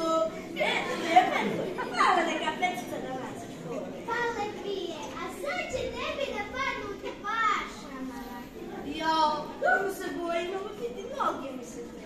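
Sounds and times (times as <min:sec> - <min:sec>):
children speaking into microphones: 0:00.0 - 0:12.0.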